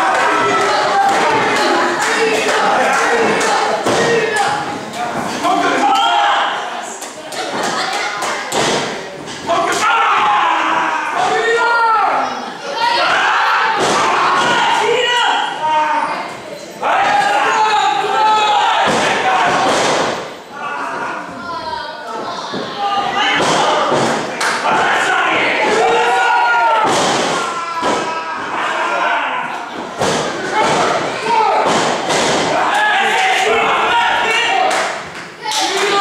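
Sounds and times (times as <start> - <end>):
people shouting: 0.0 - 4.8, 5.4 - 6.8, 9.5 - 16.2, 16.8 - 21.8, 22.5 - 36.0.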